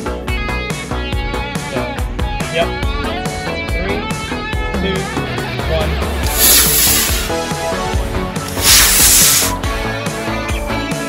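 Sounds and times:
rock music: 0.0 - 11.0
rocket motor hissing: 6.2 - 7.4, 8.4 - 9.6.

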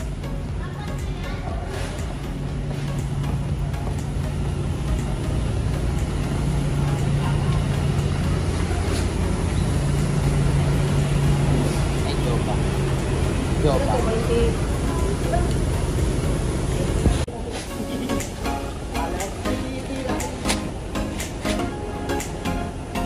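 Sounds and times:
rumbling background: 0.0 - 23.0.

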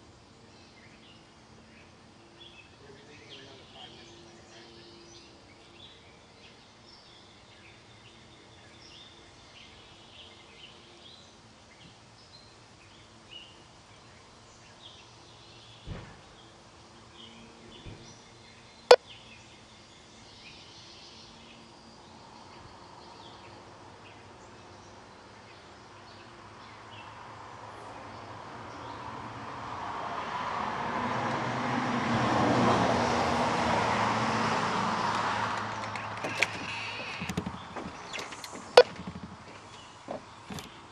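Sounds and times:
birds chirping: 0.0 - 29.2, 33.8 - 40.9
vehicle passing by: 22.1 - 40.9.

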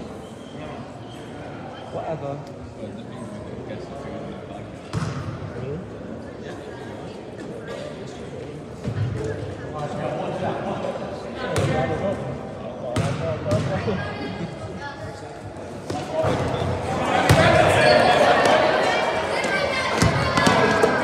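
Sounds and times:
voices and shouting echoing: 0.0 - 21.0.

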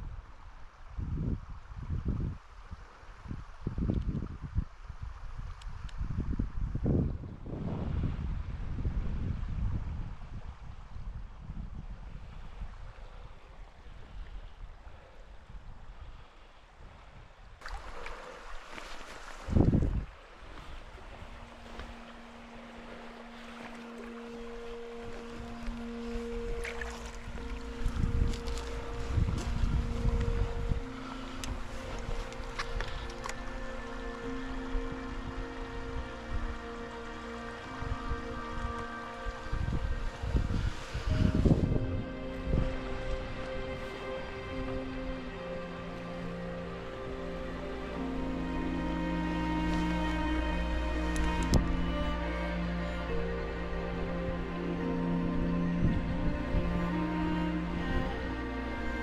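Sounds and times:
wind rumble on microphone: 0.0 - 59.0
water sloshing: 17.6 - 35.2
soft background music: 20.6 - 59.0.

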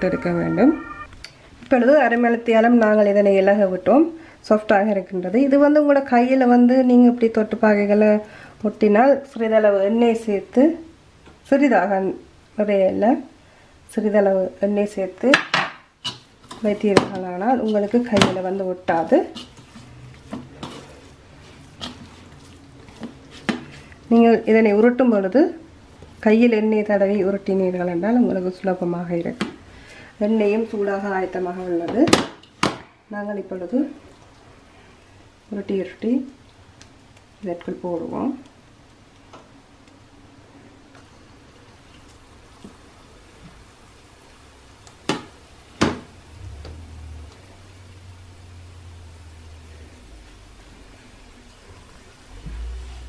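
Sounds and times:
low hum: 0.0 - 1.3, 46.2 - 53.0
dough deep-frying in oil: 1.7 - 53.0
hands kneading dough: 16.0 - 32.1.

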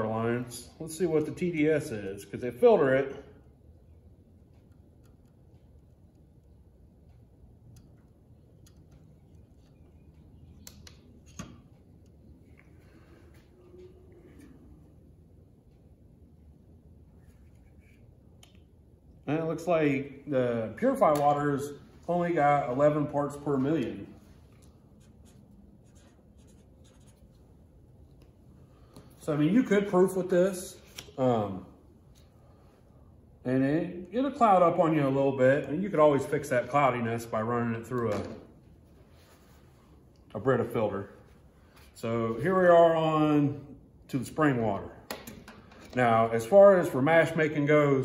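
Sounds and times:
marker writing on paper: 25.0 - 27.4.

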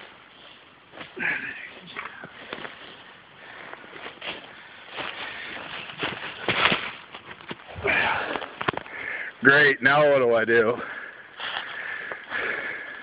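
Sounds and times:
heavy breathing: 1.1 - 6.5, 7.7 - 9.4, 10.8 - 13.0
footsteps in leaf litter: 3.9 - 8.6.

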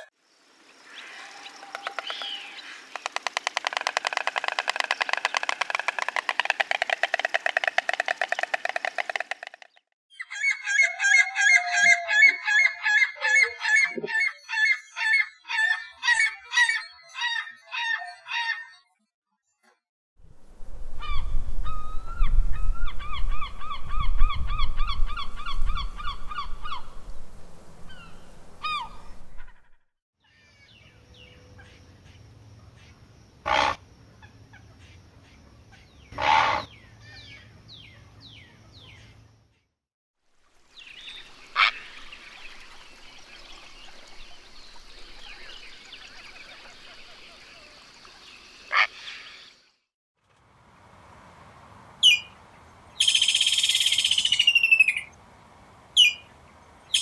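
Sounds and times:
stork bill clattering: 2.9 - 9.8.

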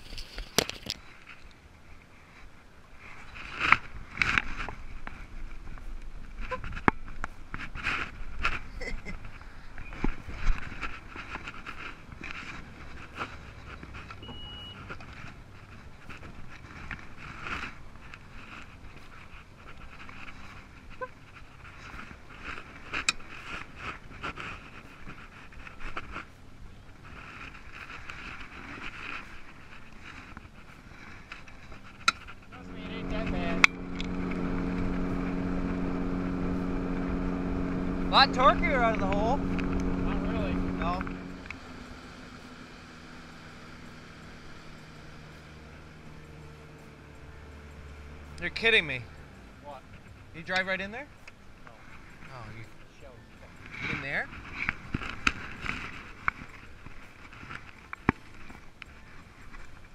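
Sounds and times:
outboard motor running: 6.3 - 59.9.

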